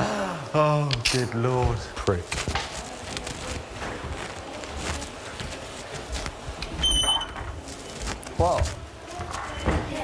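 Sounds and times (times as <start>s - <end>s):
faint rustles and clicks: 1.8s - 10.0s.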